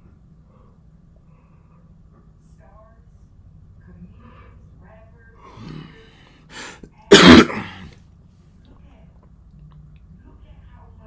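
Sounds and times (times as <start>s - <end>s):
man coughing: 6.6s - 7.9s.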